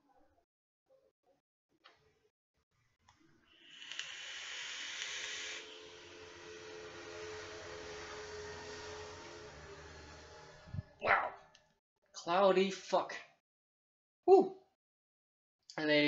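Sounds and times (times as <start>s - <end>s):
air hissing through atomizer: 3.5s - 6.2s.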